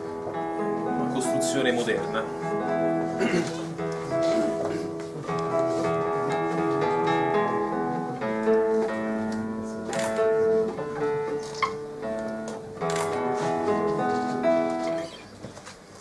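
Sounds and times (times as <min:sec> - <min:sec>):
fingerstyle classical guitar: 0:00.0 - 0:16.0.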